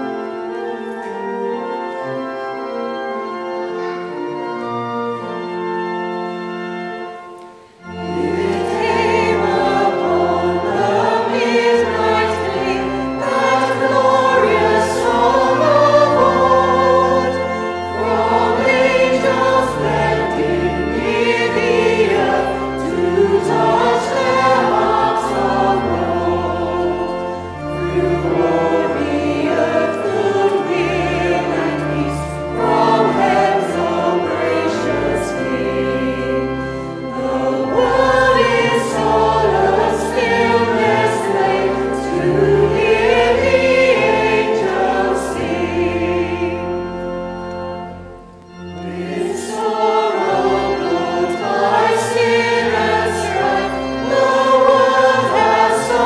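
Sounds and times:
mixed choir singing a carol: 0:00.0 - 0:56.0
organ bass notes: 0:07.8 - 0:56.0.

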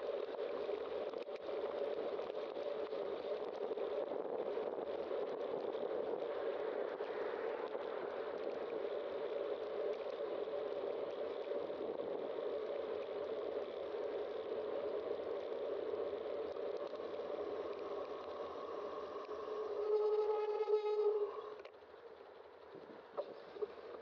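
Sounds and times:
bicycle tyres on asphalt: 0:00.0 - 0:24.0
bicycle brake squeal: 0:19.8 - 0:21.5.

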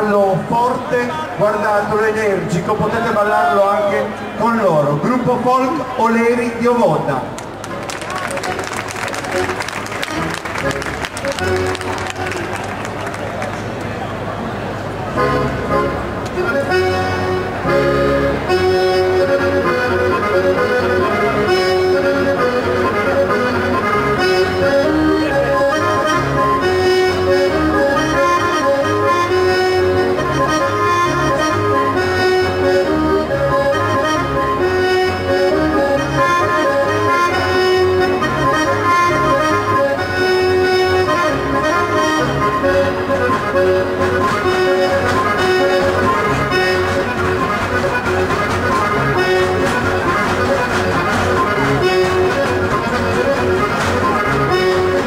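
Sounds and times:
accordion dance tune: 0:07.6 - 0:13.7, 0:15.1 - 0:55.0.

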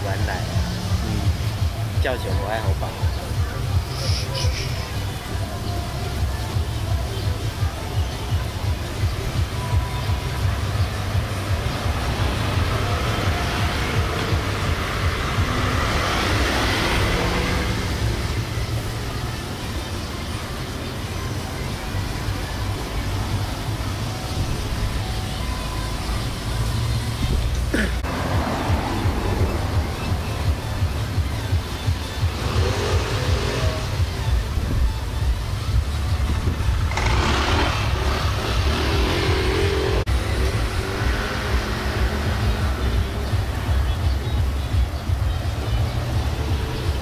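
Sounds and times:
low traffic rumble: 0:00.0 - 0:47.0
scooters passing: 0:00.0 - 0:47.0
car passing: 0:11.0 - 0:20.8, 0:21.4 - 0:31.5, 0:36.4 - 0:43.8.

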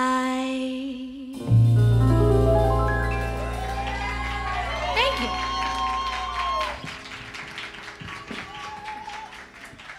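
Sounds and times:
audience applause: 0:03.1 - 0:09.9.

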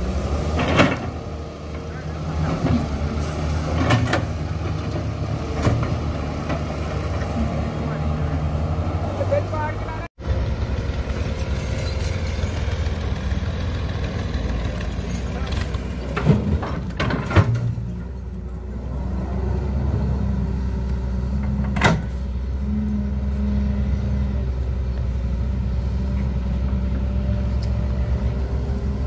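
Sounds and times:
excavator diesel engine running: 0:00.0 - 0:29.0.

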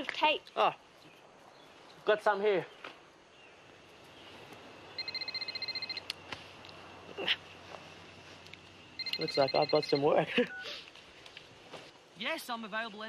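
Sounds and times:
phone ringing: 0:05.0 - 0:06.1, 0:09.0 - 0:10.7.

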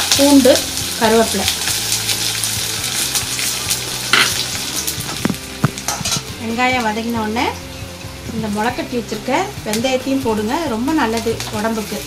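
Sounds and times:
aromatics sizzling in hot oil: 0:00.0 - 0:12.0.

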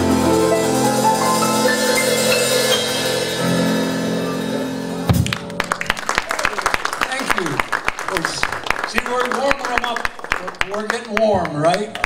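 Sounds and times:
jazz combo playing: 0:00.0 - 0:07.9
audience applause: 0:05.1 - 0:12.0.

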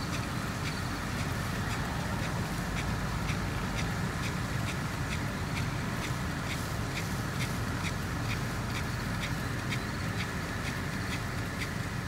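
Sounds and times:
sprinkler rasping tick: 0:00.0 - 0:12.0
sprinkler water spraying: 0:00.0 - 0:12.0.

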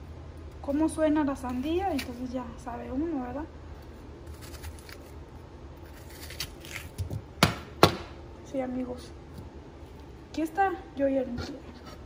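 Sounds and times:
knife cutting watermelon: 0:01.5 - 0:02.3, 0:05.8 - 0:07.3.

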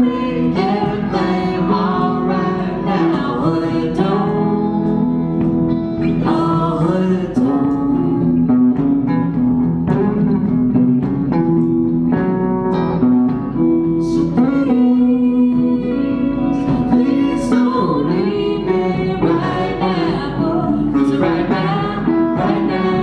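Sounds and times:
electric guitar: 0:00.0 - 0:23.0
live band playing blues: 0:00.0 - 0:23.0
person singing wordless notes: 0:13.9 - 0:23.0.

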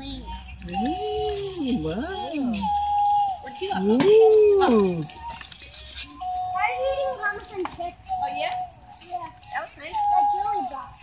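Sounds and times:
children and adults talking: 0:00.0 - 0:11.0.

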